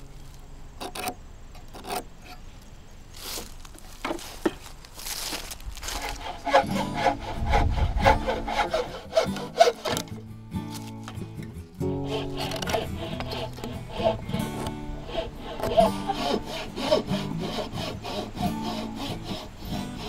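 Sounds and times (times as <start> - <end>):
frame saw cutting timber: 0.8 - 2.4, 3.2 - 11.2, 11.8 - 20.0
background music: 8.0 - 20.0.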